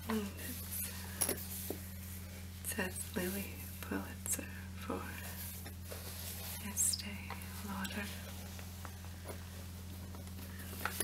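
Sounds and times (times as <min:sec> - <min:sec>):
low microphone hum: 0:00.0 - 0:11.0
soft whispering: 0:06.4 - 0:08.5.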